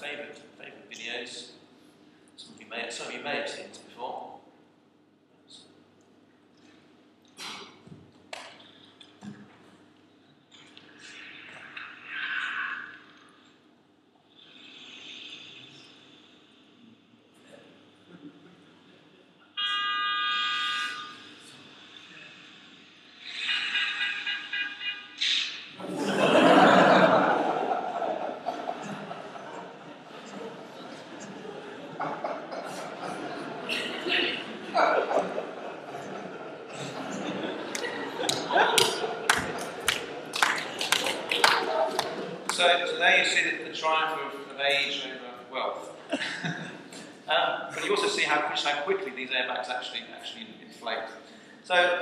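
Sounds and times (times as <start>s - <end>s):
car horn honking: 19.6s - 21.3s
murmur of voices: 25.1s - 46.1s.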